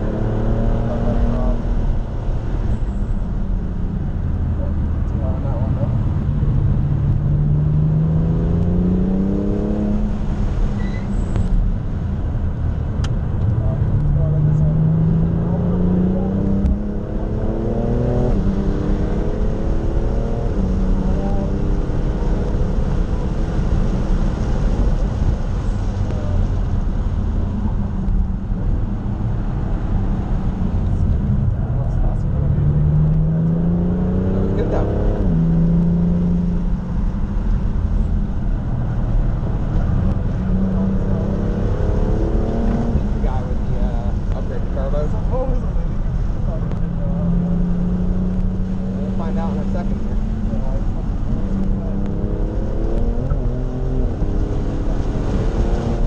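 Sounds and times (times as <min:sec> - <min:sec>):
car engine accelerating: 0:00.0 - 0:56.0
road and tyre rumble: 0:00.0 - 0:56.0.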